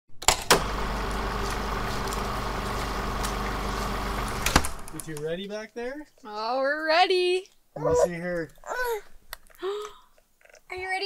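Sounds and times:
vehicle engine idling: 0.6s - 4.9s.

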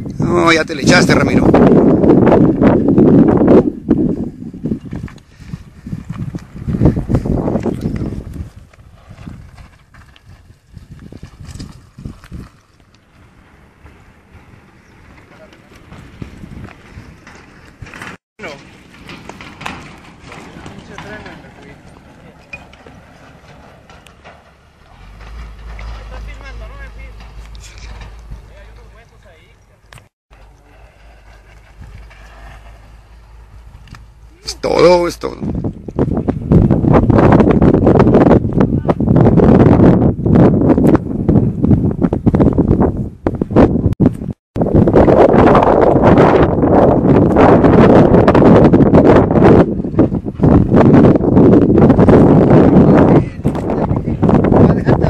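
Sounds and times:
low rumble on microphone: 0.0s - 55.0s
bike tyres crunching over stones: 4.4s - 37.2s.

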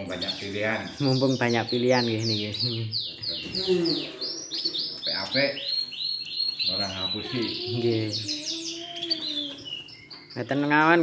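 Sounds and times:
canaries singing: 0.0s - 11.0s.

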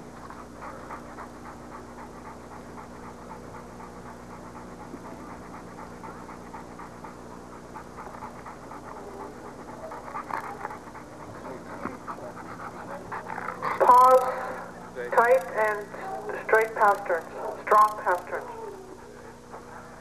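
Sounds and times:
constant low hum: 0.0s - 20.0s
dog panting: 0.0s - 20.0s.

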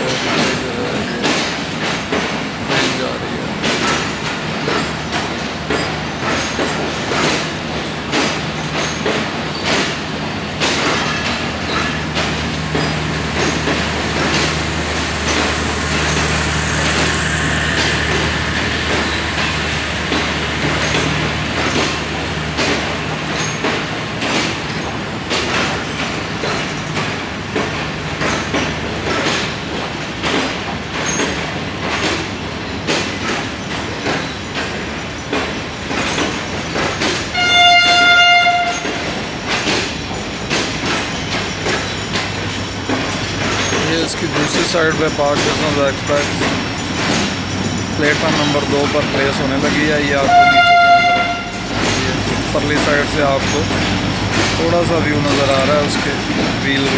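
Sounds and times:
train coaches rolling: 0.0s - 56.9s
wheels clicking over rail joints: 0.0s - 56.9s
locomotive horn blast: 37.3s - 39.1s, 50.2s - 51.7s.

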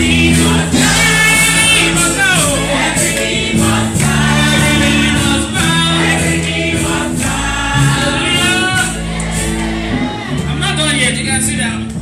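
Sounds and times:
congregation singing gospel song: 0.0s - 11.8s
live band accompaniment: 0.0s - 12.0s.

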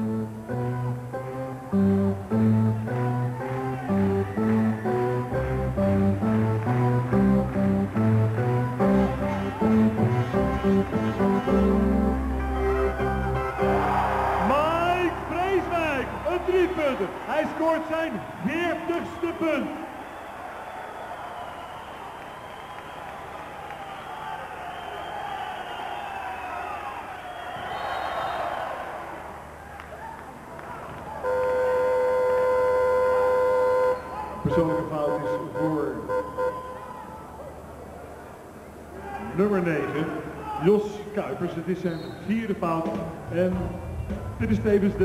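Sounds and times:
arena crowd noise: 2.6s - 45.0s
loud steady buzzer: 31.2s - 36.8s.

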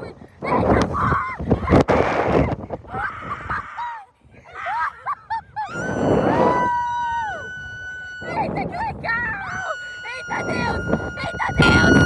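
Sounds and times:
wind rushing over microphone: 0.0s - 12.0s
girls screaming: 5.6s - 12.0s.

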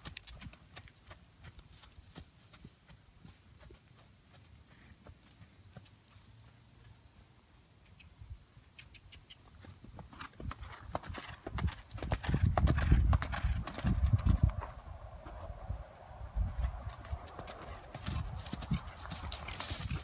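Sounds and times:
horse hoofbeats on gravel: 0.0s - 6.6s, 9.5s - 15.5s, 16.4s - 20.0s.

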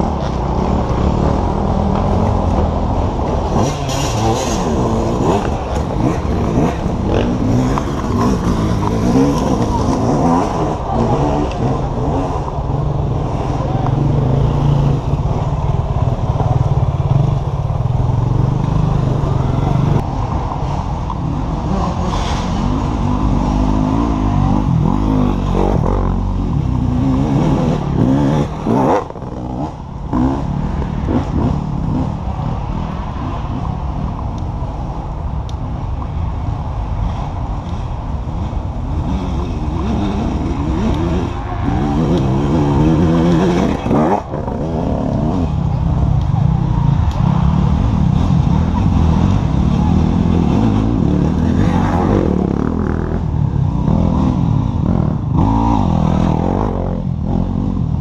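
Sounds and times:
motorcycles revving past: 0.0s - 34.2s, 38.4s - 58.0s.

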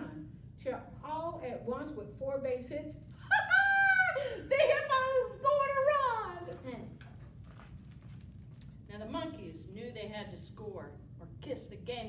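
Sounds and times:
low room noise: 0.0s - 12.0s
book pages turning: 7.0s - 8.8s.

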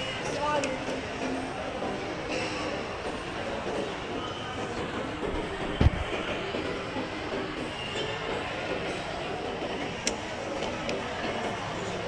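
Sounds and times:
escalator mechanical noise: 0.0s - 12.0s
shopping mall background noise: 0.0s - 12.0s.

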